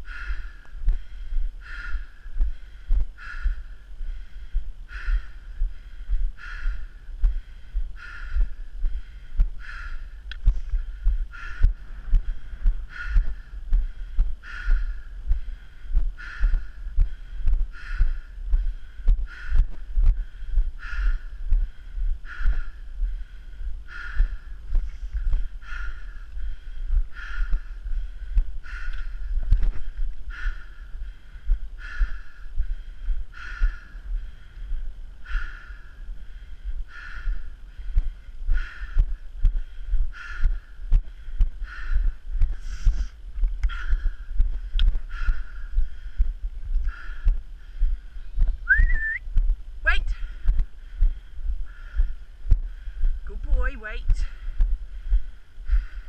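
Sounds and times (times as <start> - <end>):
low wind rumble: 0.0 - 56.0
rising whistle-like call: 48.7 - 49.2.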